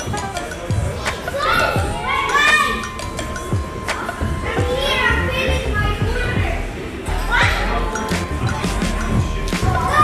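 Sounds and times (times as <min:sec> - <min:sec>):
background music: 0:00.0 - 0:10.0
children shouting: 0:01.1 - 0:06.4, 0:09.6 - 0:10.0.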